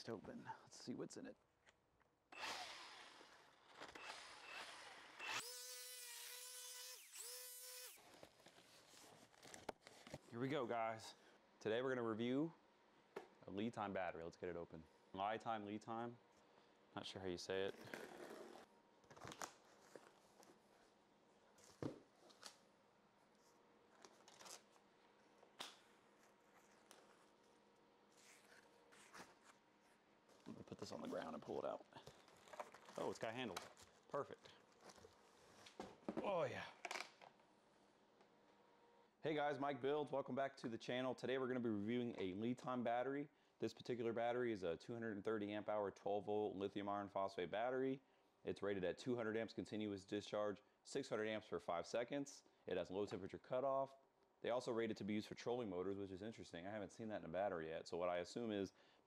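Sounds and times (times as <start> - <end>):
power tool motor whining: 2.4 - 8.1.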